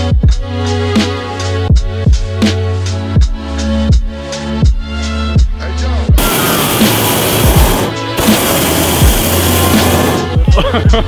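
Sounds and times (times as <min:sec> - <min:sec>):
electronic hip-hop music: 0:00.1 - 0:11.0
propane burner roaring: 0:06.2 - 0:10.4.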